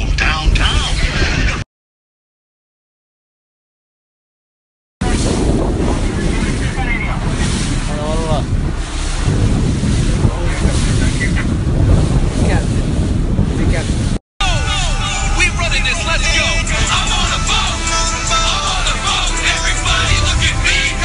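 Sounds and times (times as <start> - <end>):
water rushing around boat: 0.0 - 1.6, 5.0 - 21.0
wind buffeting microphone: 0.0 - 1.6, 5.0 - 21.0.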